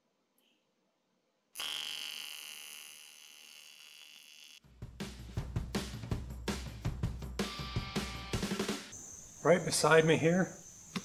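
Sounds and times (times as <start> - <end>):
welding arc buzz: 1.5 - 4.6
drum-kit music: 4.6 - 9.0.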